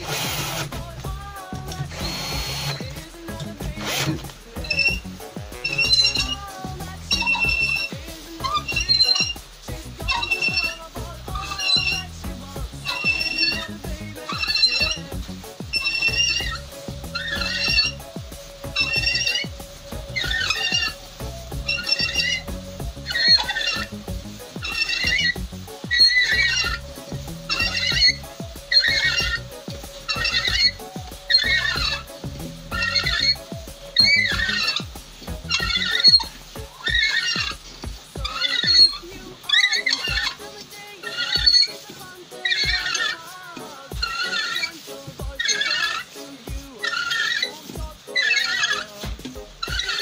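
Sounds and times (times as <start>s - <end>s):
low grinding rumble: 0.0s - 41.7s
hand reamer squealing: 0.0s - 50.0s.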